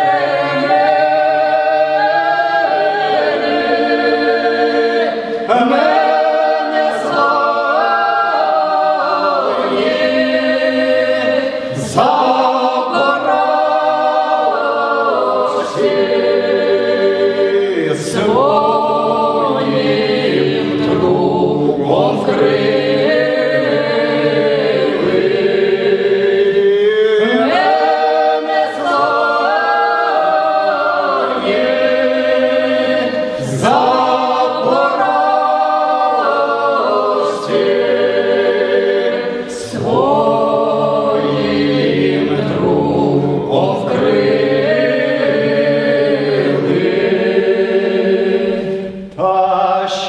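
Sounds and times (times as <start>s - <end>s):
choir singing folk song: 0.0s - 50.0s.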